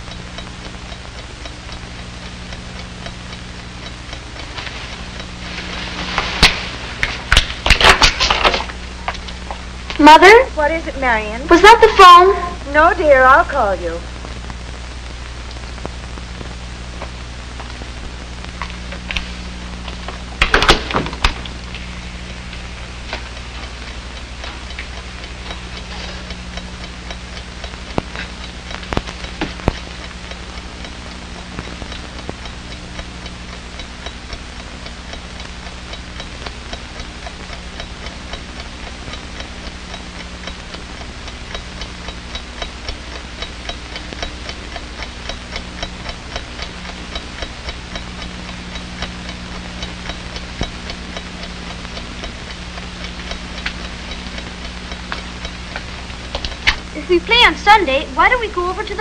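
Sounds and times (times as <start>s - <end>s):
alarm clock ticking: 0.0s - 7.6s, 8.6s - 13.9s, 19.0s - 59.0s
low hum: 0.0s - 59.0s.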